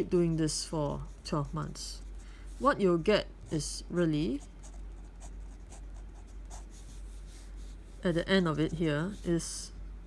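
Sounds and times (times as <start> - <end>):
low steady hum: 0.0 - 10.0
pen scratching on paper: 4.3 - 7.7.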